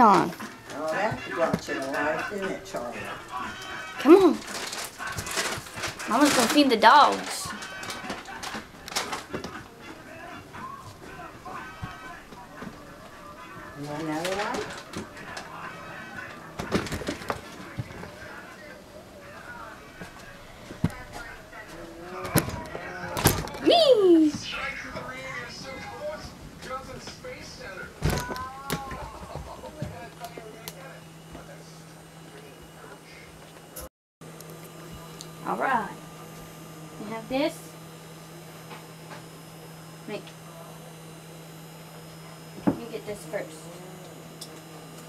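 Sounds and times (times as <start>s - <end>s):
wheelchair clicking and rattling: 0.0s - 12.8s, 13.8s - 18.4s, 22.2s - 23.8s
faint speech: 0.0s - 33.4s.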